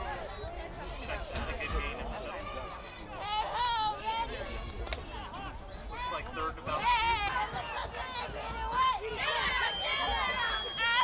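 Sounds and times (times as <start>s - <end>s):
overlapping indistinct voices: 0.0s - 11.0s.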